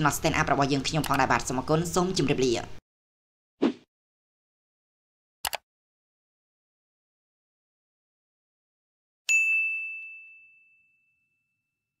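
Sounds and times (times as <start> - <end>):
bell-like ding: 9.3 - 11.8.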